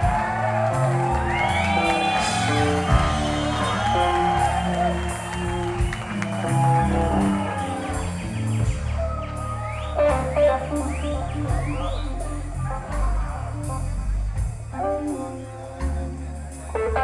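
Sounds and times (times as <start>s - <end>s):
blues-rock band playing: 0.0s - 17.0s.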